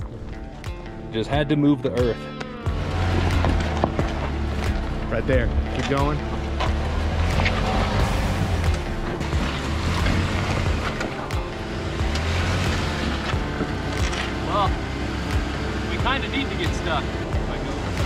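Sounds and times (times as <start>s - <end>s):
car engine pulling under load: 2.4s - 18.0s.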